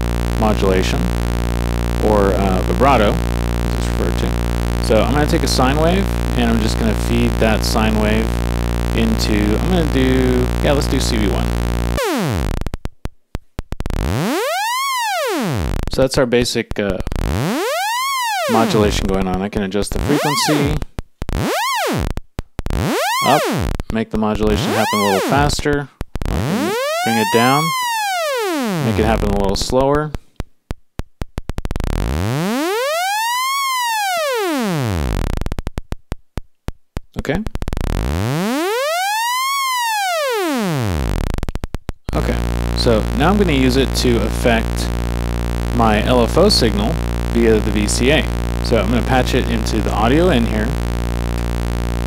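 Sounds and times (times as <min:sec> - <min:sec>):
synthesizer sawtooth tone sliding: 0:00.0 - 0:12.8, 0:13.7 - 0:15.9, 0:17.1 - 0:19.2, 0:20.0 - 0:23.8, 0:24.5 - 0:25.5, 0:26.2 - 0:29.4, 0:31.6 - 0:35.8, 0:37.7 - 0:41.5, 0:42.1 - 0:52.0.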